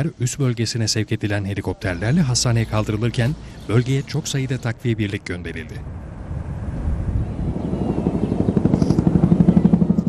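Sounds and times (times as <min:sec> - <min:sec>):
helicopter rotor beating: 0:02.3 - 0:10.0.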